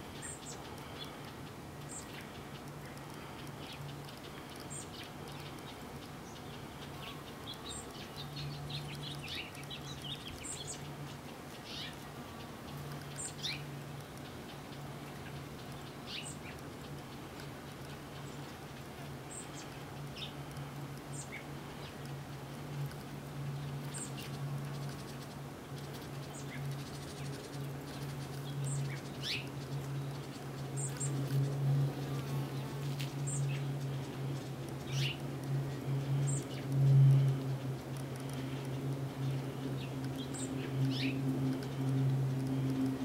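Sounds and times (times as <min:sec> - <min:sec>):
low steady hum: 0:00.0 - 0:43.0
songbirds chirping: 0:00.0 - 0:43.0.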